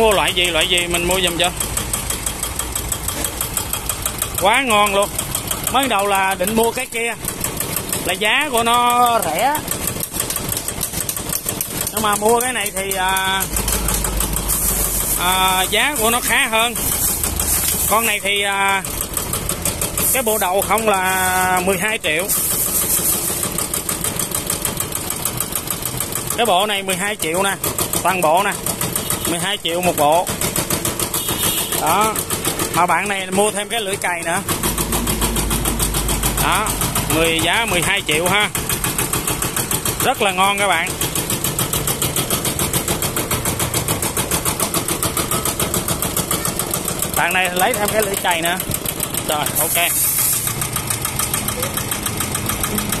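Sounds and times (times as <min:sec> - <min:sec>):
diesel engine idling: 0:00.0 - 0:53.0.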